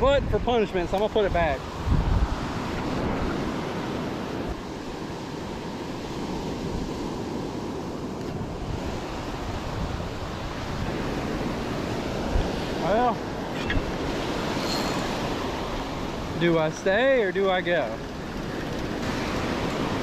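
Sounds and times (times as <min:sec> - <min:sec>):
wind rumbling on microphone: 0:00.0 - 0:20.0
surf breaking on sand beach: 0:00.7 - 0:20.0.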